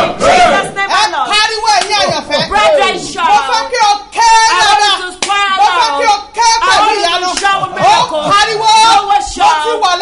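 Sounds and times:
hands clapping: 0:01.7 - 0:02.6, 0:05.1 - 0:05.4, 0:07.3 - 0:08.2.

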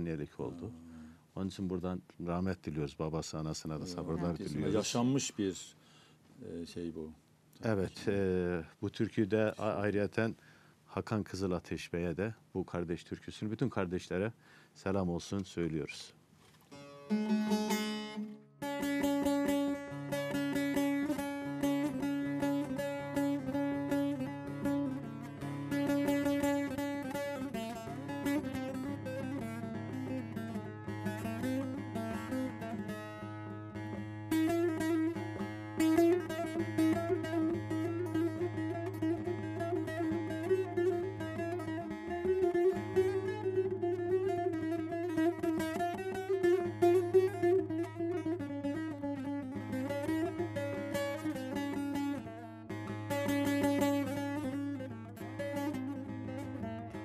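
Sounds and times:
solo plucked lute melody: 0:16.7 - 0:57.0.

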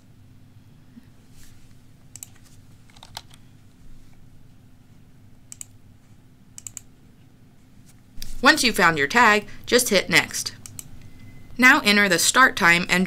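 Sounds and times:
faint low hum: 0:00.0 - 0:13.0
computer mouse clicks: 0:02.1 - 0:03.4, 0:05.5 - 0:05.8, 0:06.6 - 0:06.9, 0:10.6 - 0:11.0.

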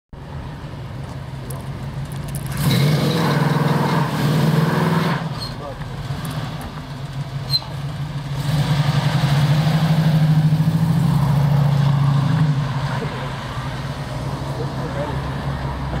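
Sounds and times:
car engine revving: 0:02.2 - 0:16.0.

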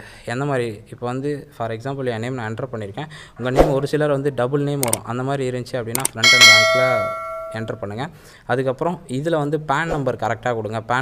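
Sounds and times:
click: 0:04.8 - 0:05.0, 0:06.0 - 0:06.2
bell chime: 0:06.2 - 0:07.8.

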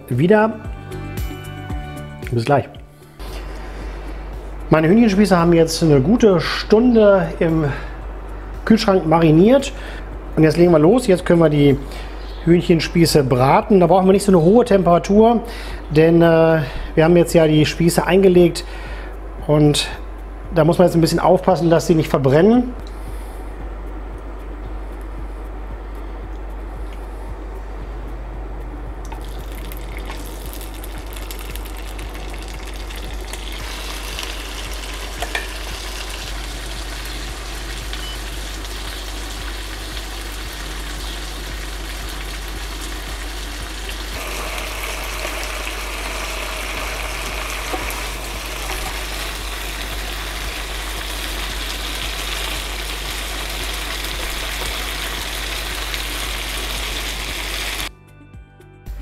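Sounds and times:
chicken sizzling in a grill pan: 0:29.2 - 0:57.9.

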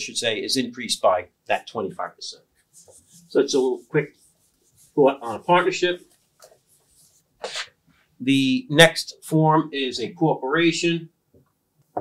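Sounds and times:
eraser wiping whiteboard: 0:02.6 - 0:07.3.

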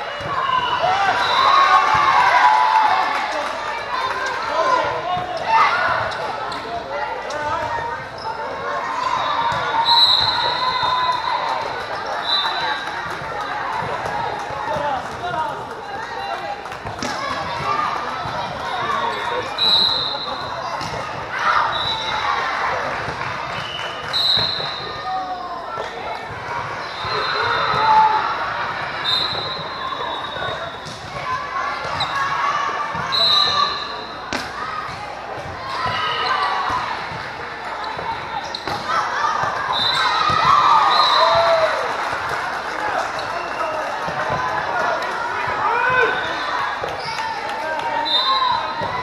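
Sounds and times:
people calling and talking: 0:00.0 - 0:49.0
volleyballs struck and bouncing: 0:20.2 - 0:21.4, 0:32.9 - 0:40.6.

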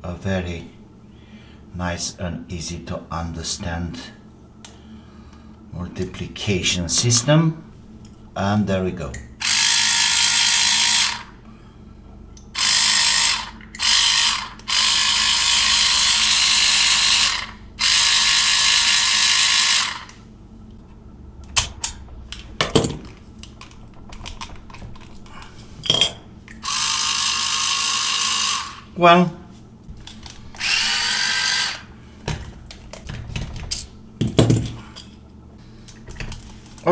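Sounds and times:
grinder motor whirring: 0:09.4 - 0:11.3, 0:12.6 - 0:20.2, 0:26.6 - 0:28.9, 0:30.2 - 0:31.9.

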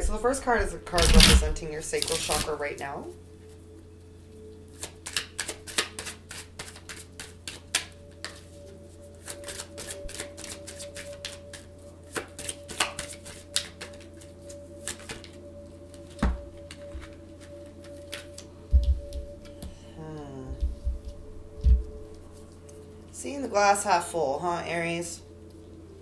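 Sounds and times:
cards being shuffled: 0:00.9 - 0:02.6, 0:04.7 - 0:19.8.

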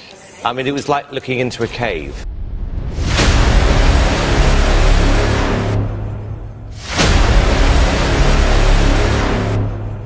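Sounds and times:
dramatic noise hit with rumble: 0:01.9 - 0:10.0.

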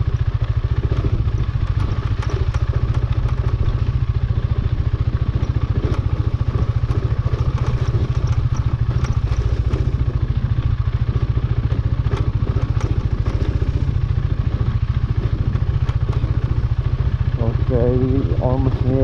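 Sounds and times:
motorcycle engine at low revs: 0:00.0 - 0:19.0
light ticks and clatter: 0:00.1 - 0:19.0.

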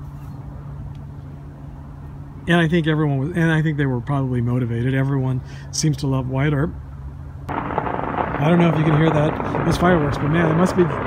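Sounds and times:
constant low hum: 0:00.0 - 0:11.0
low outdoor rumble: 0:00.0 - 0:11.0.

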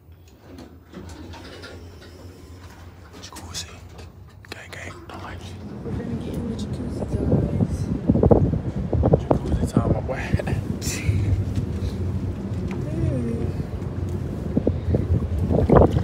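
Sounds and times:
low hum: 0:01.6 - 0:16.0
wind buffeting microphone: 0:05.2 - 0:16.0.

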